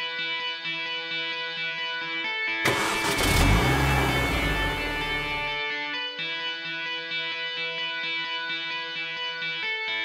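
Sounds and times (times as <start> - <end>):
background music: 0.0 - 10.0
car engine revving: 2.7 - 5.6.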